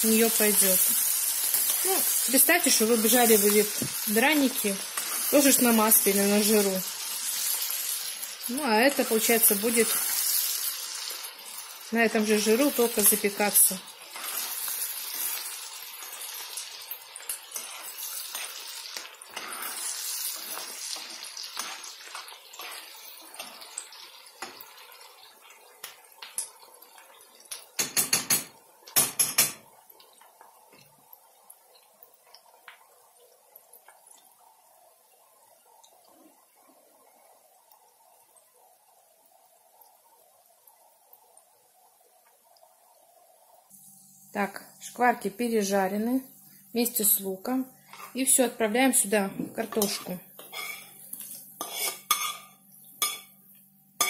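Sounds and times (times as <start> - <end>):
frying sizzle: 0.0 - 54.0
metal spoon scraping a skillet: 14.0 - 16.5, 17.2 - 23.8, 47.9 - 48.2, 49.7 - 53.3.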